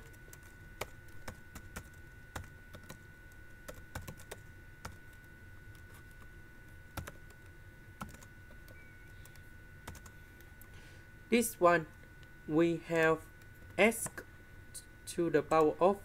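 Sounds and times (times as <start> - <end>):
computer keyboard typing: 0.0 - 6.2, 6.9 - 10.2
faint high whine: 0.0 - 16.0.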